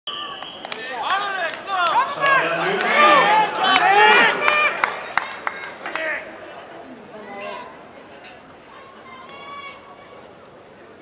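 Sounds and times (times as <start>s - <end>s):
people calling and talking: 0.1s - 11.0s.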